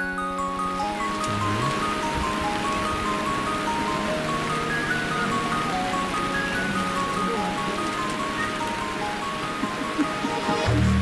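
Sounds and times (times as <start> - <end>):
heavy rain: 0.0 - 11.0
light melody of high notes: 0.0 - 11.0.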